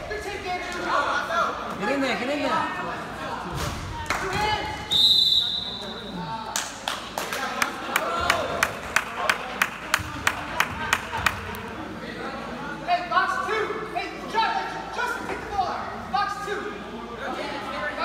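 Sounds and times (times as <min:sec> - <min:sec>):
hands clapping: 0:06.5 - 0:11.7.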